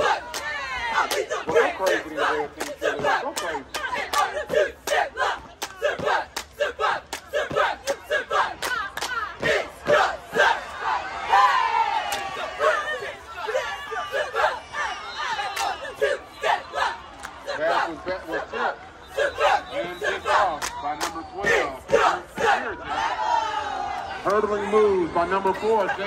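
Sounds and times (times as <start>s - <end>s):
cheerleaders chanting in unison: 0.0s - 24.2s.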